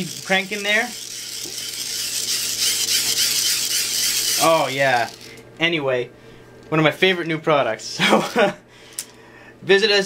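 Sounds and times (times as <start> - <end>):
hand-crank dynamo whirring: 0.0 - 5.4.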